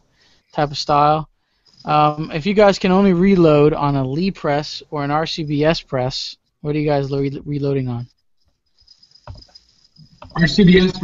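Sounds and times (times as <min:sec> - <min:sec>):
faint clicks and rustles: 0:08.4 - 0:10.4.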